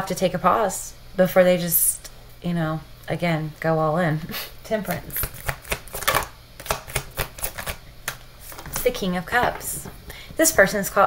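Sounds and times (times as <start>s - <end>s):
cards being shuffled: 4.9s - 10.5s.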